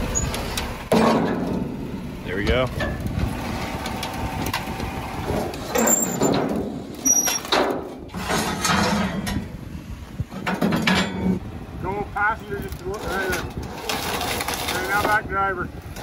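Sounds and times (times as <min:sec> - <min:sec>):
vehicle scraping up trailer deck: 0:00.0 - 0:11.5, 0:12.6 - 0:16.0
brief squeaks: 0:07.0 - 0:07.6.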